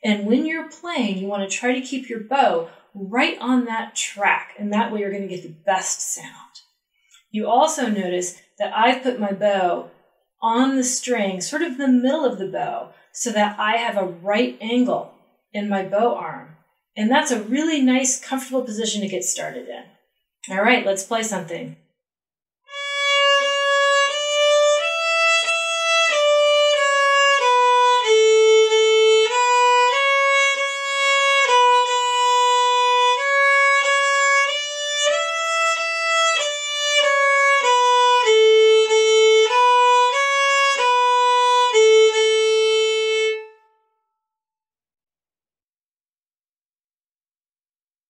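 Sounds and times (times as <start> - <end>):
violin slow melody: 22.7 - 44.0.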